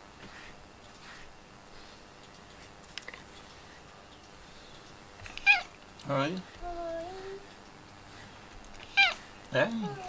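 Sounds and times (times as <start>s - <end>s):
cat meowing: 5.4s - 5.7s, 8.9s - 9.2s.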